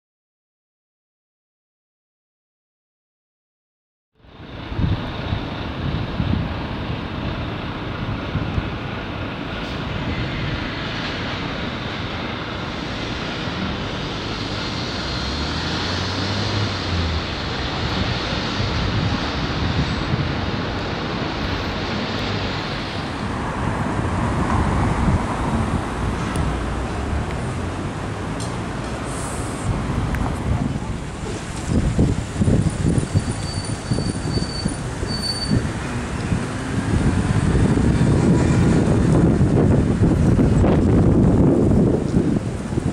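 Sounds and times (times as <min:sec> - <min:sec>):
city traffic rumble: 0:04.2 - 0:42.9.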